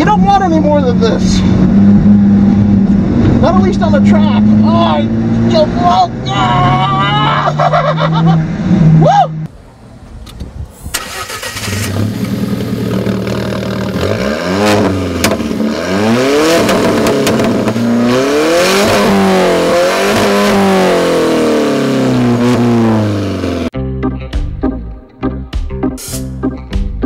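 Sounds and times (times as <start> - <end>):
car engine revving: 0.0 - 9.5, 11.0 - 23.8
music: 23.8 - 27.0.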